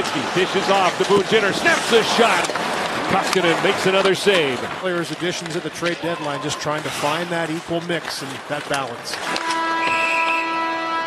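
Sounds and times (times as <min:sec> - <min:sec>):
crowd noise: 0:00.0 - 0:10.6
arena horn long steady tone: 0:09.3 - 0:11.0.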